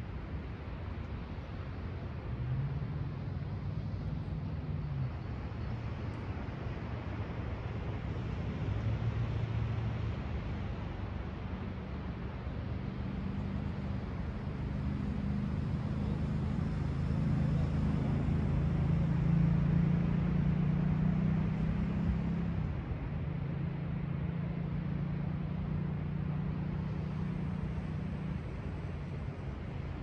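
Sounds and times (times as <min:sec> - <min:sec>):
engine drone: 0:10.0 - 0:30.0.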